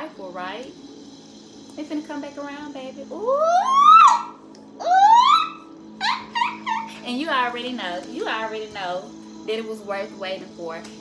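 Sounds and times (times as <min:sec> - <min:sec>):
faint musical drone: 0:00.0 - 0:11.0.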